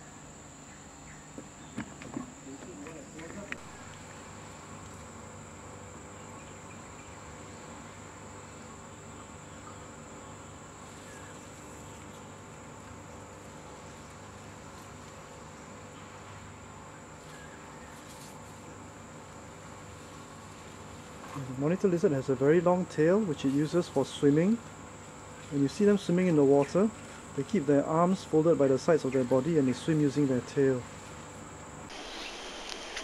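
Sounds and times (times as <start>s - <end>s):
faint background hiss: 0.0s - 33.0s
insects droning: 0.0s - 33.0s.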